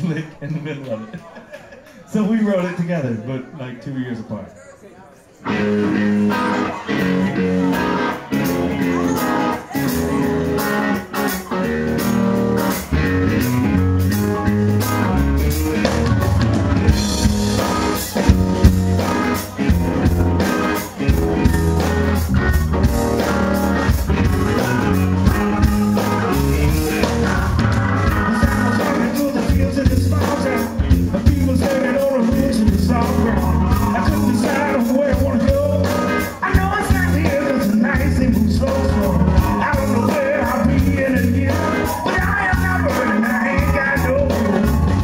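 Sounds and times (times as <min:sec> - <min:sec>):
live blues band playing: 0:05.4 - 0:45.0
electric guitar hook: 0:05.5 - 0:45.0.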